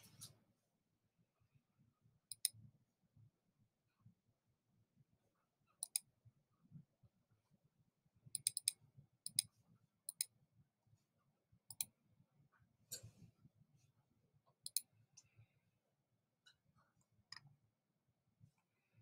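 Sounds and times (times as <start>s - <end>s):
computer mouse clicks: 2.3s - 2.6s, 5.8s - 6.1s, 8.4s - 9.5s, 10.1s - 10.3s, 11.7s - 11.9s, 14.6s - 15.3s.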